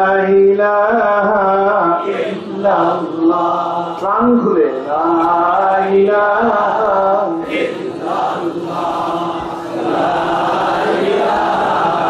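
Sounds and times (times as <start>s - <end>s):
man chanting religious recitation: 0.0s - 12.0s.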